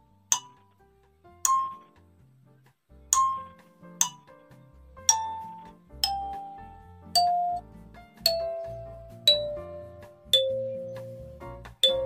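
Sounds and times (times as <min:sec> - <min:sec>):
kalimba notes plucked: 0:01.4 - 0:01.9, 0:03.1 - 0:04.4, 0:05.0 - 0:12.0.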